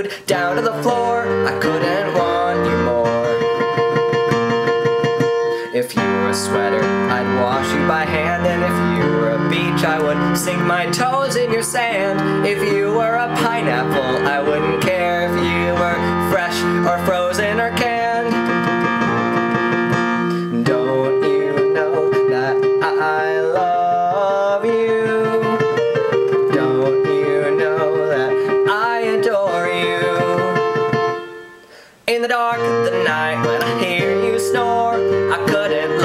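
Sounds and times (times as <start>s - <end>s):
man singing: 0.0s - 31.3s, 32.0s - 36.0s
digital piano chords: 0.0s - 36.0s.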